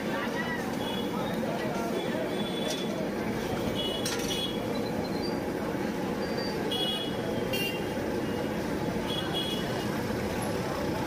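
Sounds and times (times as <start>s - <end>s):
street traffic noise: 0.0s - 11.0s
short high-pitched squeaks: 6.2s - 6.7s.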